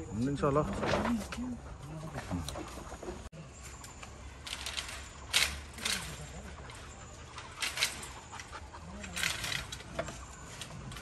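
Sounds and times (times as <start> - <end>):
vine foliage rustling: 0.0 - 11.0
wire netting rattling: 4.2 - 11.0.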